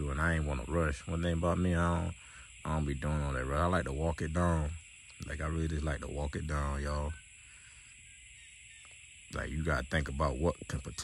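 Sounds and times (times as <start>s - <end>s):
insect chorus drone: 0.0s - 11.0s.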